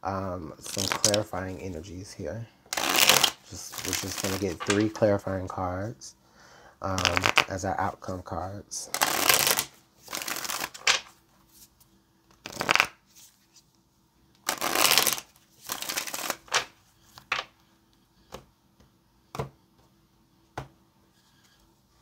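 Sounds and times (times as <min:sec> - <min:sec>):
cards being shuffled: 0:00.6 - 0:01.7, 0:02.7 - 0:05.1, 0:07.0 - 0:07.5, 0:08.9 - 0:13.6, 0:14.4 - 0:17.5.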